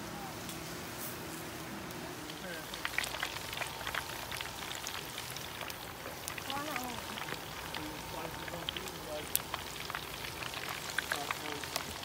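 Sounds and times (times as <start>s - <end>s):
hot oil crackling and popping: 1.8s - 12.0s.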